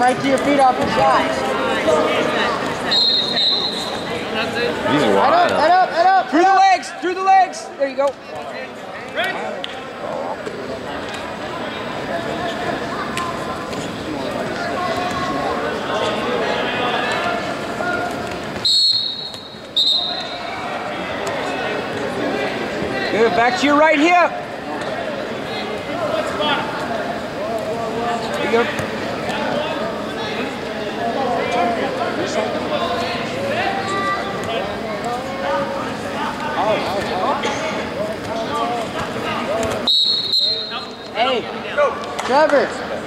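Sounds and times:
gymnasium chatter: 0:00.0 - 0:43.0
sports whistle blasts: 0:02.9 - 0:04.1, 0:18.6 - 0:20.4, 0:39.8 - 0:41.0.

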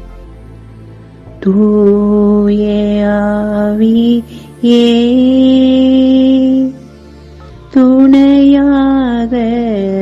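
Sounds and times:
low steady drone: 0:00.0 - 0:10.0
soft background music: 0:00.0 - 0:10.0.

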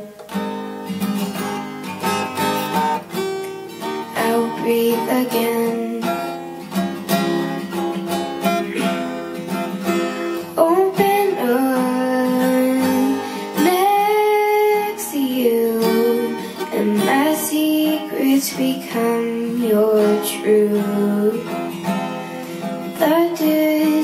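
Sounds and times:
acoustic guitar strumming: 0:00.0 - 0:24.0
girl singing: 0:04.0 - 0:06.4, 0:10.4 - 0:21.9, 0:22.8 - 0:24.0.

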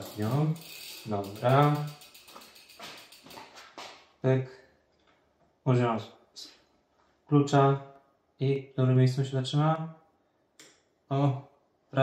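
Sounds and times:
person speaking: 0:00.0 - 0:02.0
bicycle chain clicking and rattling: 0:00.0 - 0:04.1.

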